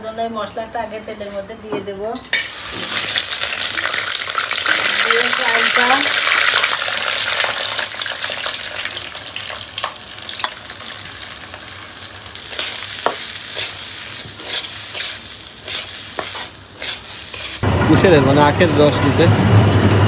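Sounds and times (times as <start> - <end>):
rice sizzling in hot oil: 2.2 - 17.6
spatula scraping metal pan: 12.5 - 17.6.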